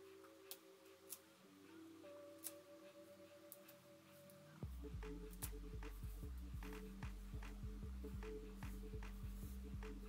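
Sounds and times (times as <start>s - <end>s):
deep bass beat: 4.6s - 10.0s.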